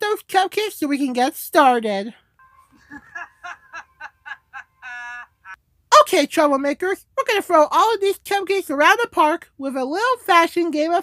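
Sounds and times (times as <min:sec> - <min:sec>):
high-pitched pitch-shifted giggling: 0:02.5 - 0:05.6.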